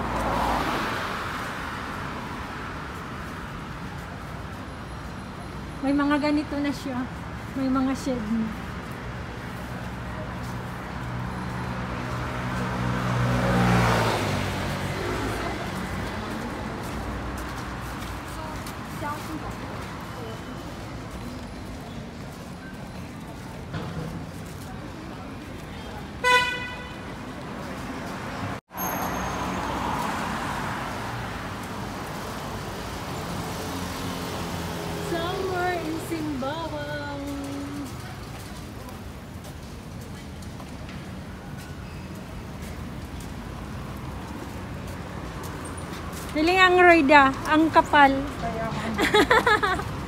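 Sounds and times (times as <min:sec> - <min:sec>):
vehicle passing by: 0:00.0 - 0:01.9, 0:10.5 - 0:20.1.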